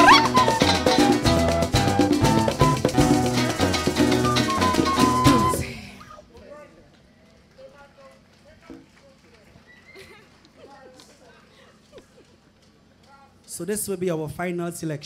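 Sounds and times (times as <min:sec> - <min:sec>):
live folk band playing: 0:00.0 - 0:05.8.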